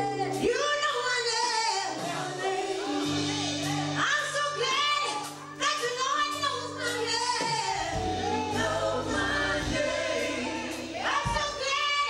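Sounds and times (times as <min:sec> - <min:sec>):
women's choir singing: 0:01.9 - 0:04.0, 0:07.1 - 0:12.0.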